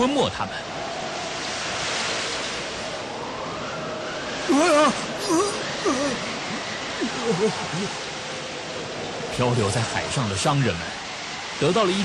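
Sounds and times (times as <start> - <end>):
heavy waves rushing: 0.0 - 12.0.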